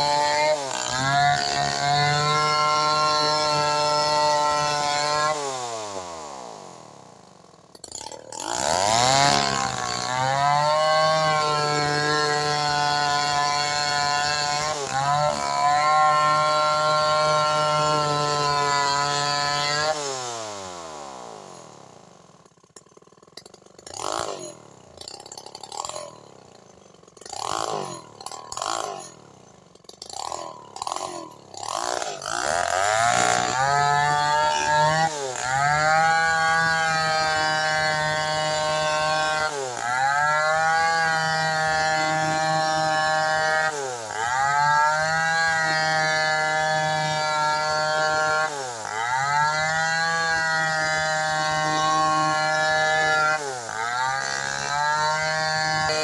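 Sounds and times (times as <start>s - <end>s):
chainsaw cutting log: 0.0s - 56.0s.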